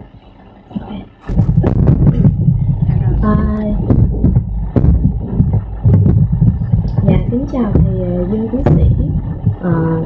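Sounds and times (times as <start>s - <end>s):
low rumbling noise: 0.0s - 10.0s.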